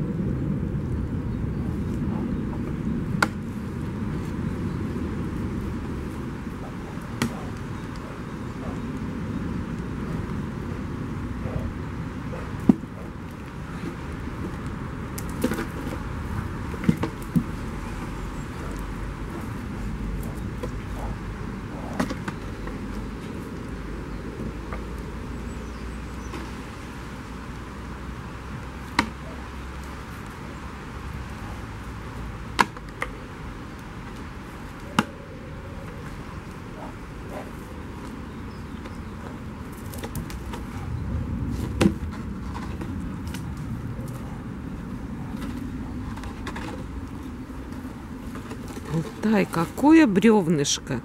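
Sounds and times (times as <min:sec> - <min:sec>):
outdoor background noise: 0:00.0 - 0:51.0
sharp knocks on a wooden log: 0:28.8 - 0:29.3, 0:32.5 - 0:33.1.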